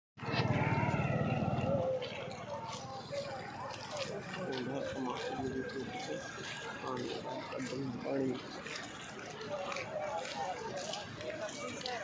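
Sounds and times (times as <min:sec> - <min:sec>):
vehicle engine rumbling: 0:00.2 - 0:09.4
people's voices: 0:00.2 - 0:12.0.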